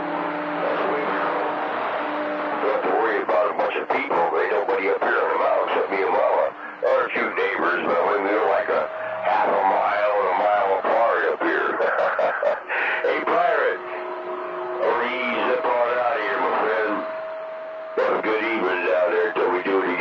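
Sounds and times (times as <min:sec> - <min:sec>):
voices over radio: 0:00.6 - 0:01.6, 0:02.6 - 0:20.0
steady whistle tone: 0:05.2 - 0:20.0.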